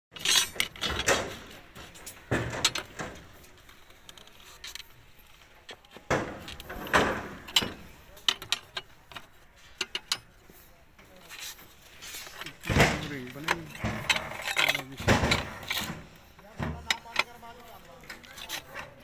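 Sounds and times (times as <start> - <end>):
metal rebar clanking and scraping: 0.1 - 19.0.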